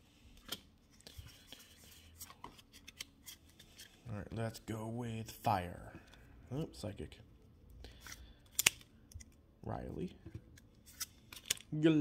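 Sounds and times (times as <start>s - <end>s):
card edges snapping: 8.2s - 8.9s.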